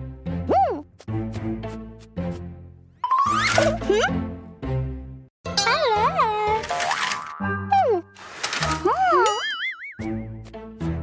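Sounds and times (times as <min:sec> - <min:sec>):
bouncy children's music: 0:05.5 - 0:11.0.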